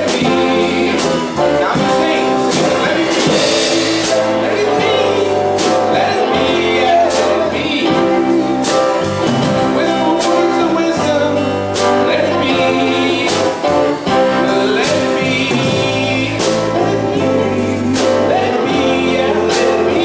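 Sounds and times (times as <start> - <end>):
electric guitar: 0.0 - 20.0
man singing: 0.0 - 20.0
strummed guitar: 0.0 - 20.0.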